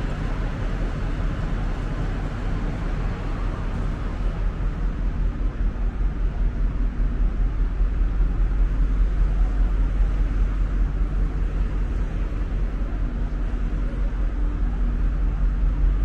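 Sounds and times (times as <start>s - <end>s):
faint machinery hum: 0.0s - 16.0s
low rumble: 0.0s - 16.0s.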